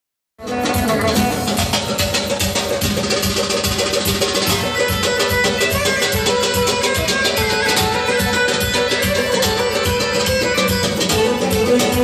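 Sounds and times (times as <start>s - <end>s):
hand-drum beat: 0.4s - 12.0s.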